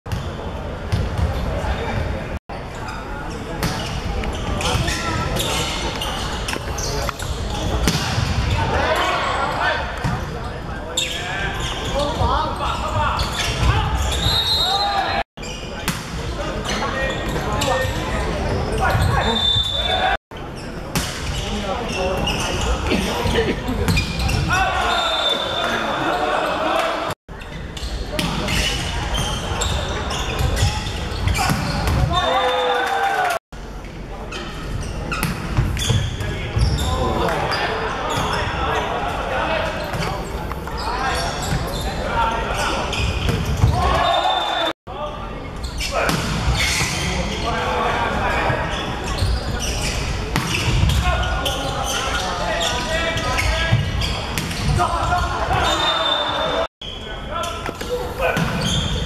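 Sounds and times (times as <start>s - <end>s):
people shouting and cheering: 24.4s - 27.2s, 31.4s - 33.4s, 43.7s - 44.7s.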